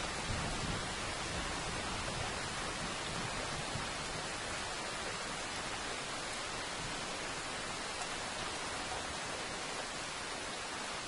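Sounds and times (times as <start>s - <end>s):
steady rainfall: 0.0s - 11.0s.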